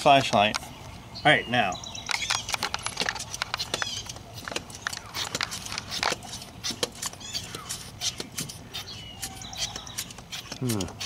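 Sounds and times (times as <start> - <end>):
hand pump clicking: 2.0 - 11.0.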